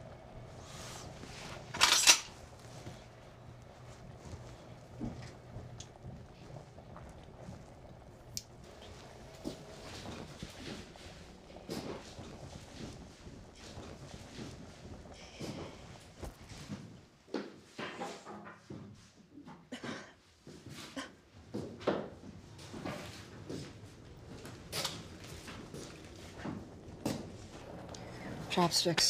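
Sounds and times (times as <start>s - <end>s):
objects handled at a counter: 1.6s - 2.4s.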